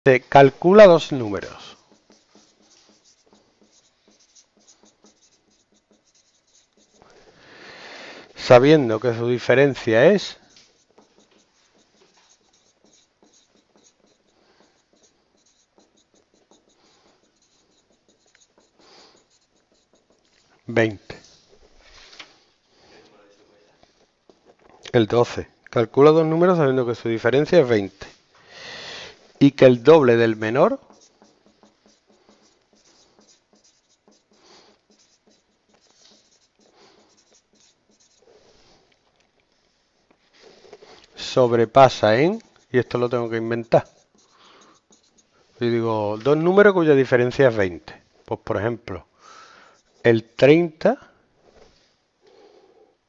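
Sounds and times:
marker pen squeaking on whiteboard: 0:00.3 - 0:07.6, 0:08.2 - 0:22.4, 0:23.2 - 0:28.1, 0:29.1 - 0:50.7.

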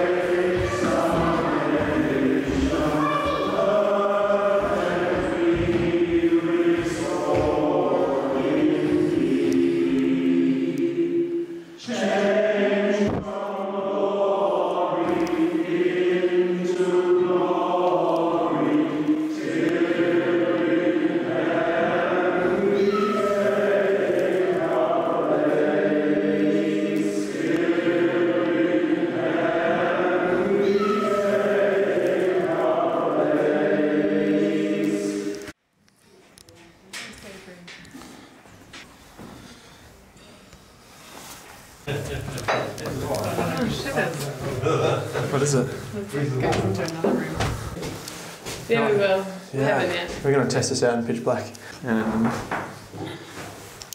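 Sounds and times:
choir singing slow chant: 0:00.0 - 0:35.6, 0:40.8 - 0:50.2.

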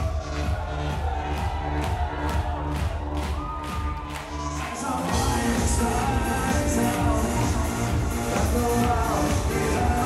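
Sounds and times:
drum beat: 0:00.0 - 0:04.1, 0:05.1 - 0:10.0
synth bass: 0:00.0 - 0:10.0.

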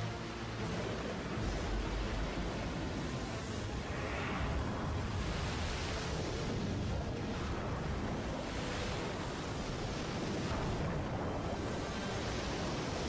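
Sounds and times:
waves and churning water: 0:00.0 - 0:13.0.

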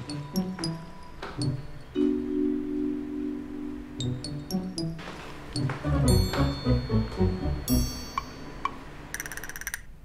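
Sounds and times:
chime-like chord: 0:01.9 - 0:08.7.

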